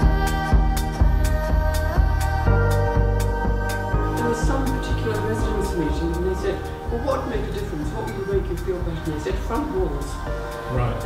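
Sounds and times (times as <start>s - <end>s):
instrumental background music: 0.0s - 11.0s.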